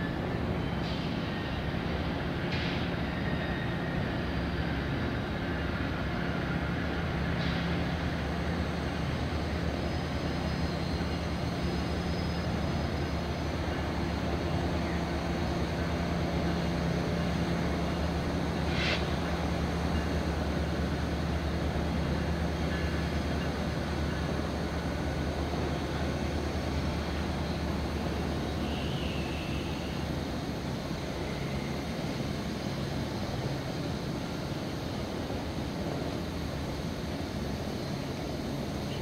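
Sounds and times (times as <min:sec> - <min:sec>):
locomotive engine rumble: 0:00.0 - 0:39.0.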